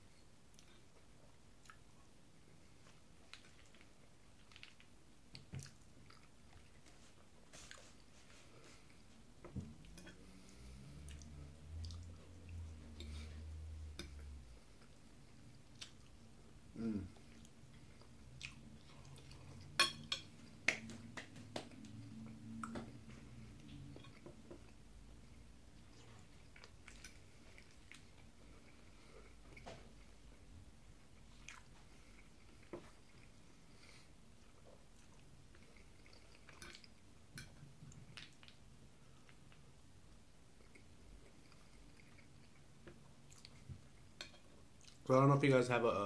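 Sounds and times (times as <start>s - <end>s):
chewing food: 2.8s - 9.0s, 9.7s - 16.4s, 17.2s - 39.8s, 40.5s - 45.1s.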